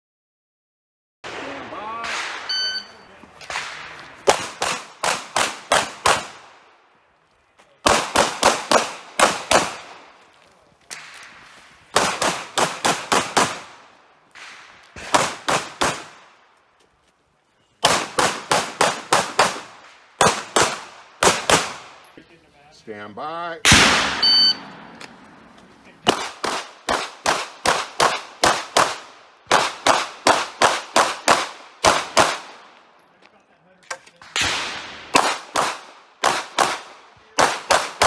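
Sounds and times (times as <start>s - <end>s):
pistol shots: 1.3s - 6.6s, 7.8s - 10.1s, 11.9s - 16.4s, 17.8s - 22.1s, 23.6s - 25.4s, 26.0s - 32.7s, 34.2s - 38.0s
shot timer beep: 2.5s - 3.1s, 24.2s - 24.7s.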